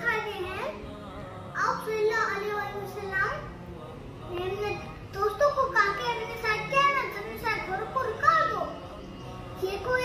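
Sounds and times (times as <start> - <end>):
boy reciting: 0.0 - 10.0.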